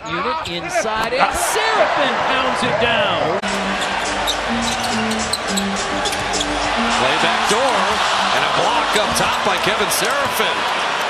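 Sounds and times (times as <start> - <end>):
crowd noise: 0.0 - 11.0
arena music low notes: 2.2 - 10.7
sneaker squeaks: 3.5 - 7.2.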